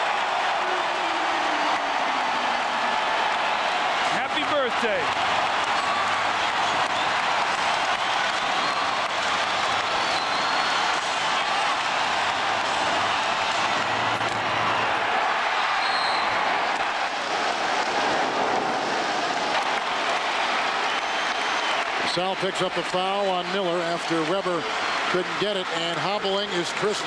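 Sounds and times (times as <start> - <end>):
crowd cheering and applauding: 0.0 - 27.0.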